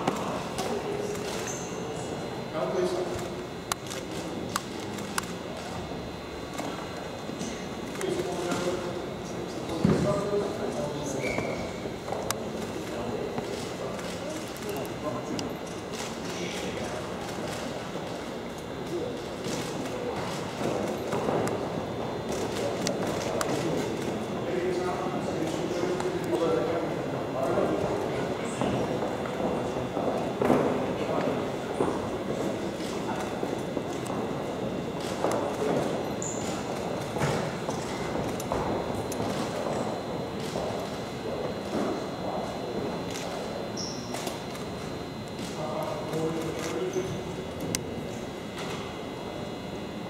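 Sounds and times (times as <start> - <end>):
murmur of voices: 0.0 - 50.0.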